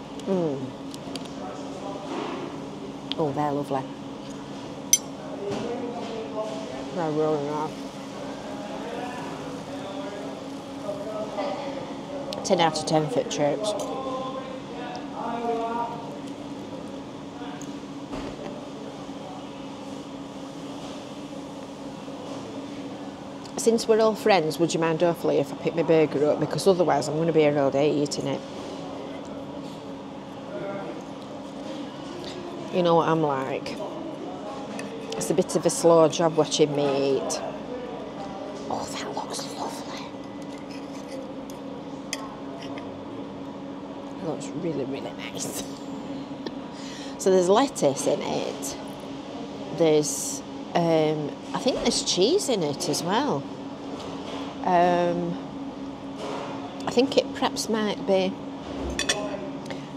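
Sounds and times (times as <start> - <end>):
ventilation hum: 0.0 - 59.9.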